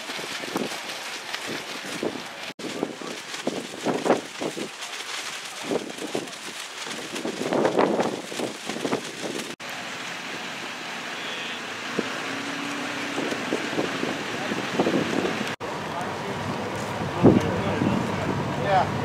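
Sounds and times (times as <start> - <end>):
wind on microphone: 0.0 - 9.6, 11.8 - 15.6.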